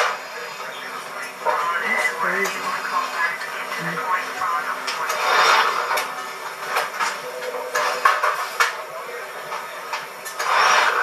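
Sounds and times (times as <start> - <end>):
indistinct news report voices: 0.0 - 11.0.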